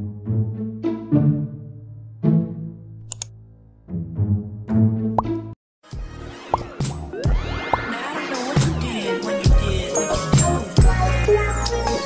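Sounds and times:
background music with pitch swoops: 4.2s - 12.0s.

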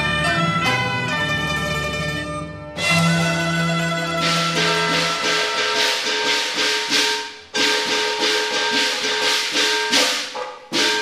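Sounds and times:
fast rattling percussion: 2.8s - 11.0s.

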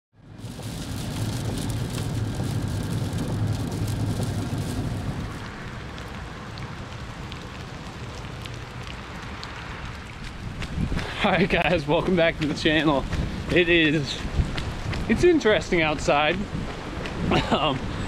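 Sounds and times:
low rumble: 0.2s - 11.0s
rain on flooded road: 0.2s - 18.0s
raindrops ticking nearby: 0.2s - 18.0s.

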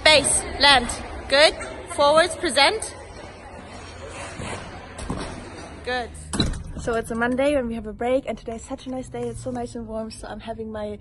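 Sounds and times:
ice skate blades scraping ice: 3.9s - 5.6s.

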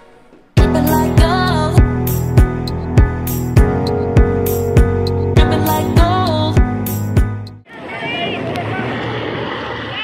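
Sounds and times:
wind and rain on microphone: 7.7s - 10.0s.

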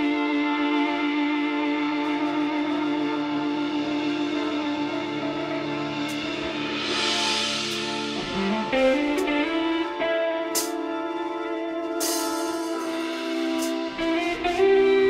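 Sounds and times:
electric guitar chord ringing: 0.0s - 15.0s.

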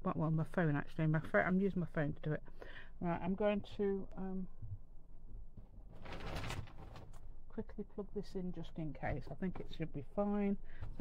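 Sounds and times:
rustle of objects handled: 5.6s - 7.2s.

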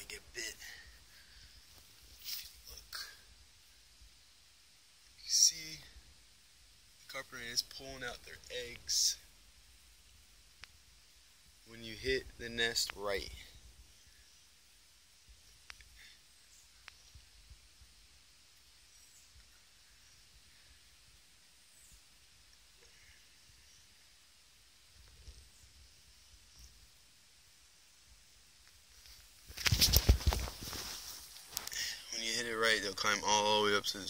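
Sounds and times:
faint ticks: 10.5s - 10.8s, 15.3s - 17.6s.

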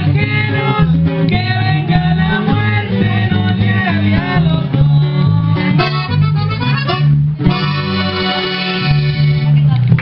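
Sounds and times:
accordion chords: 0.0s - 10.0s
electric bass: 0.0s - 10.0s
twelve-string guitar: 0.0s - 10.0s.

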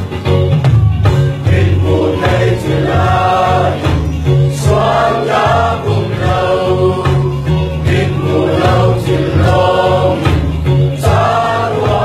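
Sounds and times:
group singing a gospel song: 1.3s - 12.0s.

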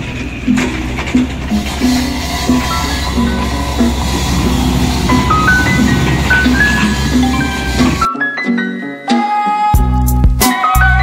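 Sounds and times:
repeating bass line: 1.5s - 8.1s.

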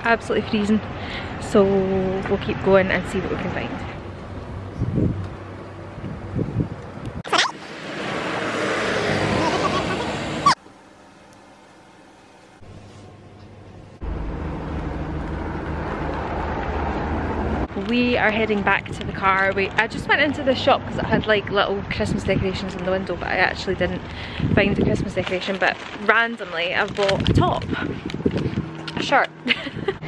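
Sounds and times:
wind rumbling on microphone: 1.6s - 7.3s, 14.0s - 30.0s
car passing with tyre hiss: 7.5s - 10.6s.

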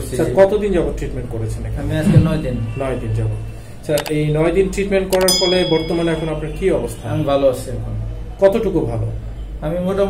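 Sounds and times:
mouse-click sound effects: 4.0s - 4.2s.

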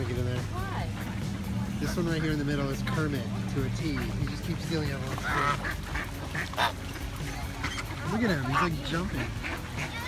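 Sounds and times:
ducks quacking: 0.0s - 10.0s
geese honking: 1.8s - 10.0s.

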